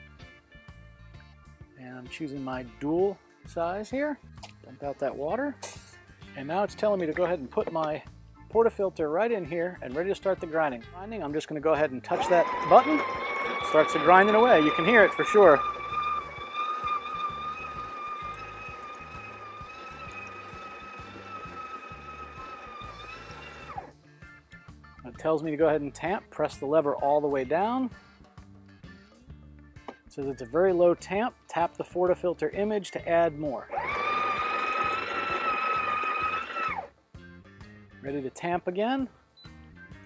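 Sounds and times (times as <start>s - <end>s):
coffee grinder whining: 12.1s - 23.9s, 33.6s - 36.9s.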